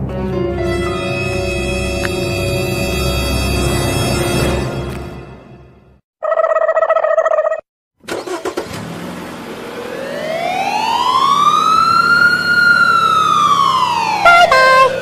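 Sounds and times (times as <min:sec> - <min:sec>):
siren wail: 0:09.7 - 0:15.0.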